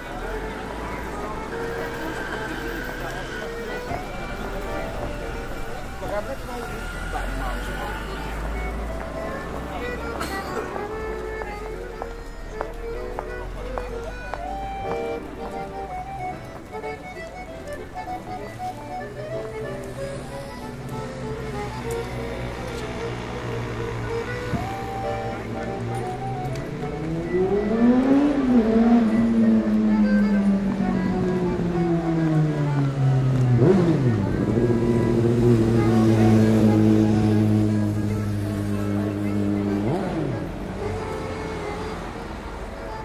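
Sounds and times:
accordion melody: 0.0 - 43.0
street traffic noise: 0.0 - 43.0.

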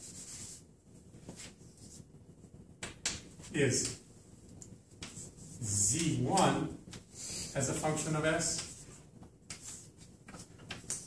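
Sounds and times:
chalk tapping on blackboard: 5.0 - 7.0, 8.5 - 8.9, 9.5 - 11.0.

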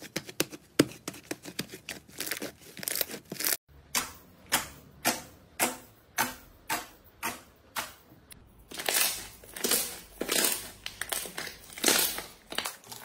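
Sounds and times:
slime crackling squelches: 8.6 - 13.0.

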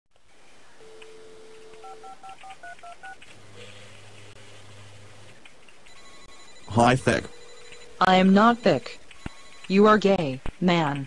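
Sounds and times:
telephone dial tone: 0.8 - 3.2, 5.9 - 10.0
touch-tone dialing: 0.8 - 3.2, 5.9 - 10.4.

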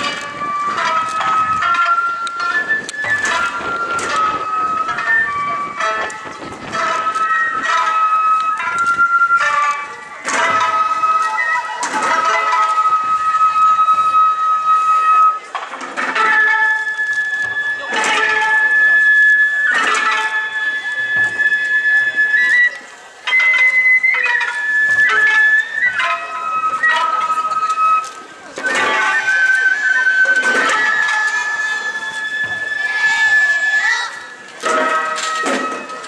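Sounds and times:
drum strikes: 0.0 - 14.1, 15.6 - 19.1, 23.2 - 33.5, 34.2 - 36.0
taiko drum strikes: 0.0 - 14.2, 19.7 - 22.2, 34.6 - 36.0
bamboo flute high notes: 0.0 - 36.0
shamisen plucks: 0.0 - 36.0.

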